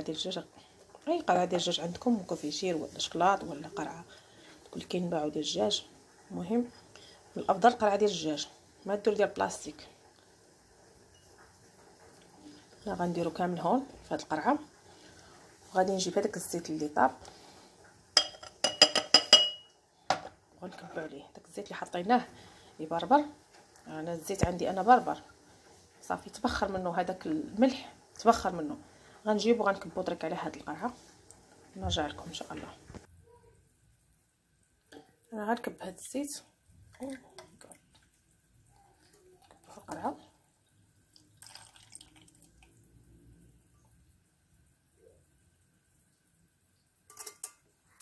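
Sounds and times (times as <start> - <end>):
glass lid clinking on jar: 18.2 - 19.7
oil trickling into glass jar: 40.5 - 43.0.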